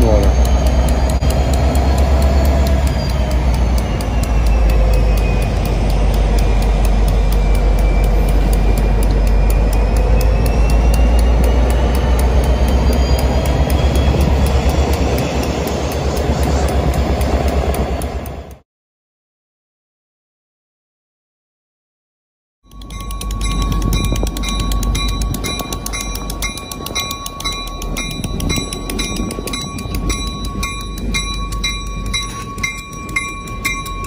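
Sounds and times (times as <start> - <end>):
locomotive engine rumble: 0.0 - 18.6, 22.7 - 34.0.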